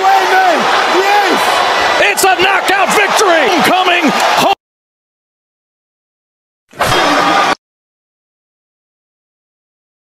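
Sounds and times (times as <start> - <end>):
crowd roaring and shouting: 0.0 - 4.6, 6.7 - 7.6
excited voices: 0.0 - 4.6.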